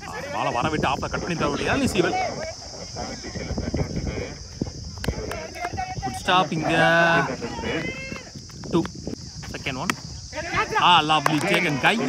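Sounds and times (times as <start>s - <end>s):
high-pitched hiss: 0.0s - 12.0s.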